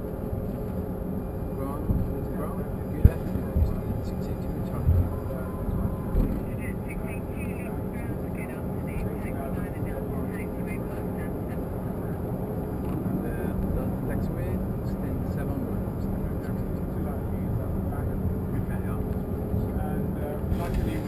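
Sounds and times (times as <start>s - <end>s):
low steady tone: 0.0s - 11.6s
idling jet engines hum: 0.0s - 21.0s
faint voice: 1.6s - 12.2s.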